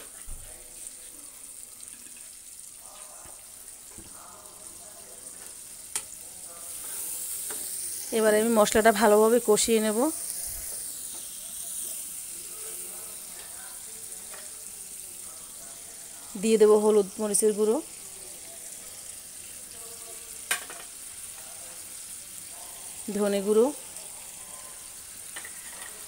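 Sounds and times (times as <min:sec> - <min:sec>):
paste sizzling in hot oil: 0:00.0 - 0:26.0.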